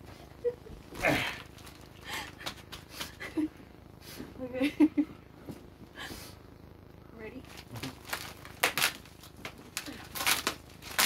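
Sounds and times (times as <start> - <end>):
woman laughing: 0.3 - 0.9, 4.4 - 5.1.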